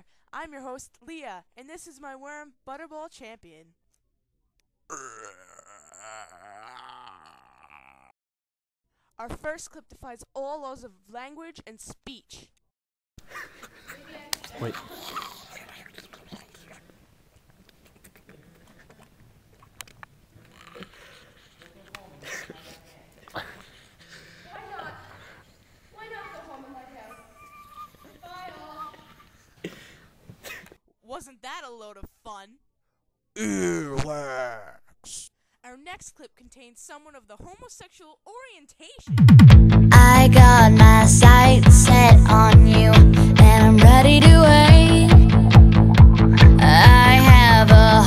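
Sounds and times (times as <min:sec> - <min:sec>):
person's low drawn-out vocal noise: 0:33.4 - 0:34.6.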